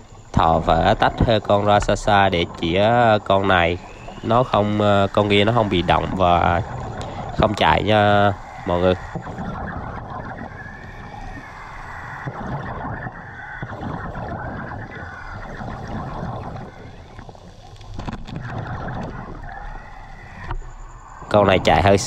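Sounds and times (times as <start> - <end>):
exhaled bubbles gurgling: 0.0 - 22.0
low water rumble: 0.0 - 22.0
scuba breathing through regulator: 6.6 - 7.4.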